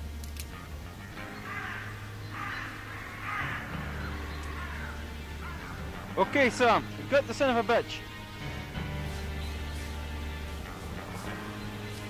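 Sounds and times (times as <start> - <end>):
low background music: 0.0 - 12.0
crows cawing: 1.2 - 12.0.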